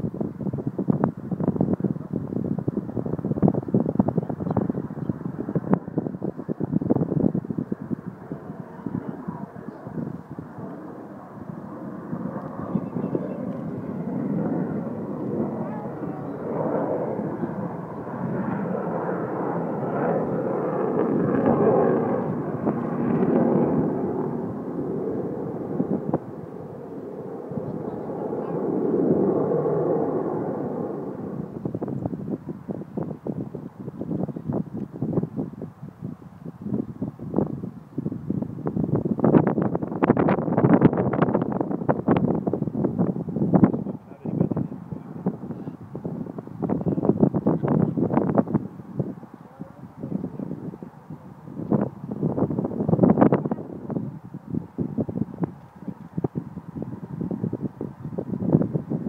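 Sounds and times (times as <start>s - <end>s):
distant jet engines rumbling: 0.0s - 59.0s
wind buffeting microphone: 0.0s - 59.0s.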